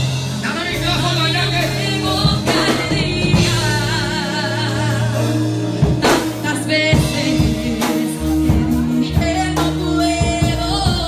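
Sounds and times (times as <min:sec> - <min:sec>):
band playing gospel music: 0:00.0 - 0:11.0
person singing with vibrato: 0:00.0 - 0:11.0.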